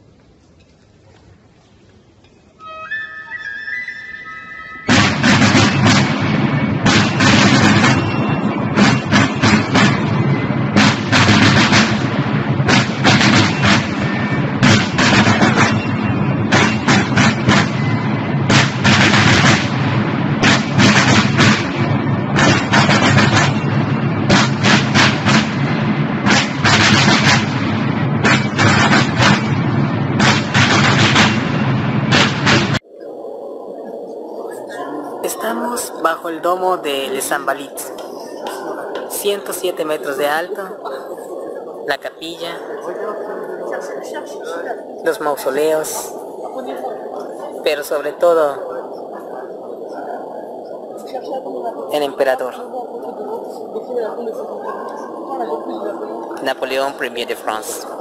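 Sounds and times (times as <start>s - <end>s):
military field drums marching beat: 4.8s - 32.9s.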